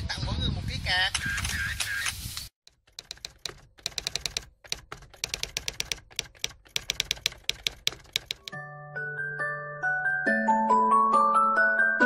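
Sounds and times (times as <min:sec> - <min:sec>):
typewriter keystrokes clacking: 0:02.7 - 0:08.6.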